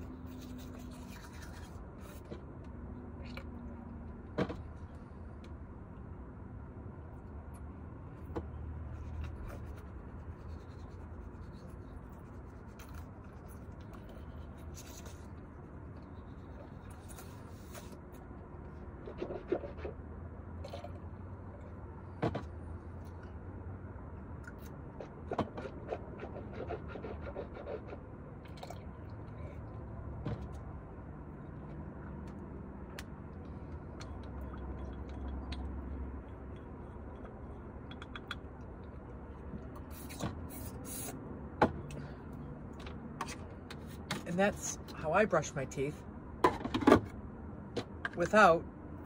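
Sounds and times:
toothbrush scrubbing teeth: 0.2 - 1.8.

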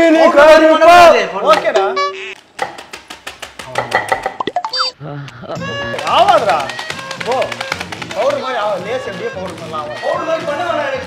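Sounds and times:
comedy music: 4.4 - 11.0
short pitched tone: 4.6 - 5.0
fast run of clicks: 5.9 - 10.1.

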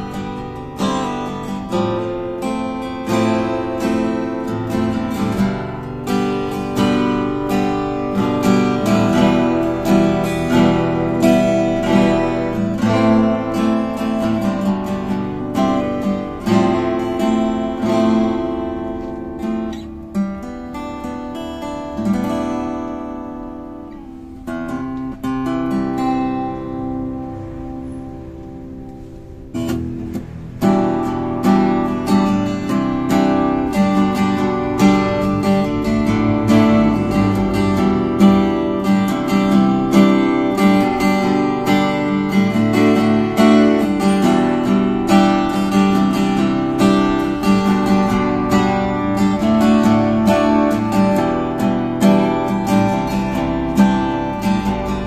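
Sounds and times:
acoustic guitar fingerstyle: 0.0 - 55.0.

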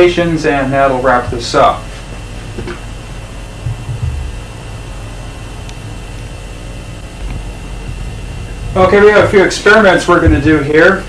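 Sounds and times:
steady low hum: 0.0 - 11.0
soft low bumps: 1.1 - 4.8, 7.2 - 10.8.

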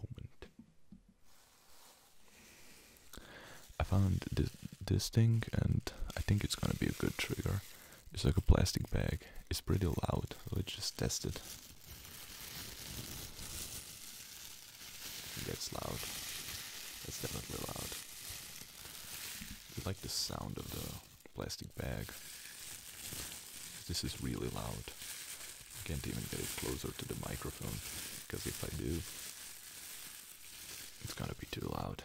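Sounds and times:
plastic bag crinkling: 1.4 - 32.0.

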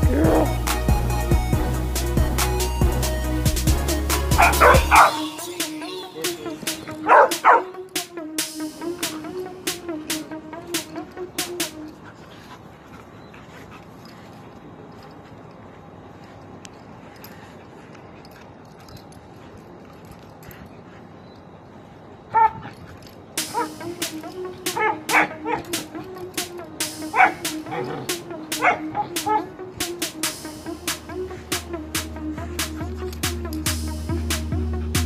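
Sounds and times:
background music with steady beat: 0.0 - 12.5, 23.0 - 35.0
dog barking: 4.3 - 5.3, 6.9 - 7.8, 22.3 - 22.6, 23.4 - 23.8, 24.7 - 25.8, 27.1 - 29.5.

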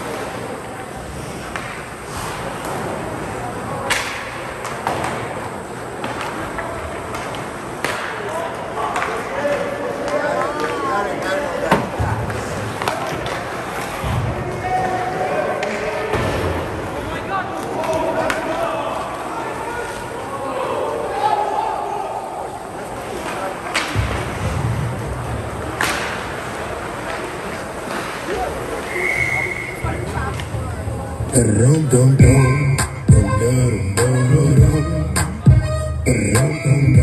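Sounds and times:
hockey sticks and puck clacking: 0.0 - 16.6, 17.6 - 20.1, 23.0 - 30.6
spectators' voices and shouts: 2.6 - 37.0
skates scraping on ice: 23.0 - 30.6.

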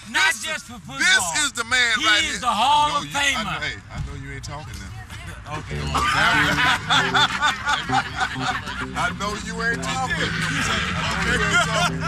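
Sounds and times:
man laughing loudly: 5.7 - 12.0.

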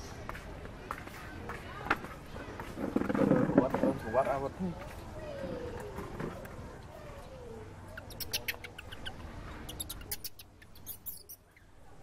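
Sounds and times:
high-pitched animal squeaks: 7.9 - 11.6.

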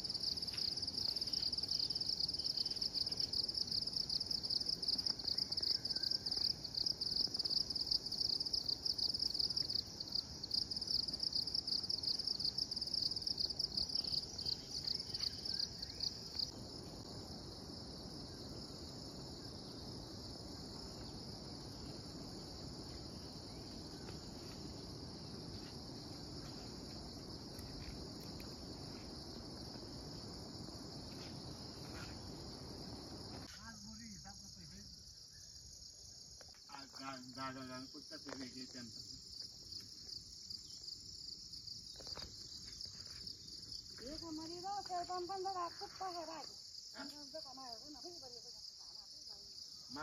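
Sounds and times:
insects trilling chorus: 0.0 - 50.0.

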